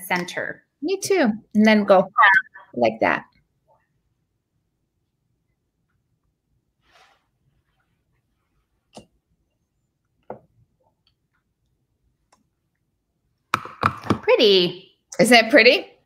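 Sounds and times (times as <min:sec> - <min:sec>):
wet mouth sounds: 0:02.2 - 0:02.7.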